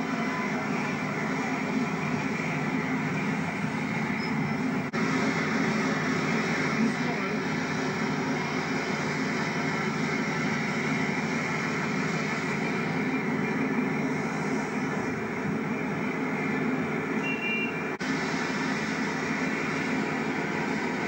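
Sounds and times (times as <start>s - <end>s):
diesel train engine droning: 0.0s - 21.0s.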